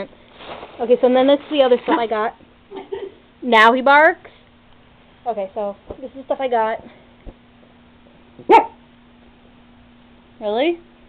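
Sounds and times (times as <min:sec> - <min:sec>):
dog barking: 0:08.4 - 0:08.8.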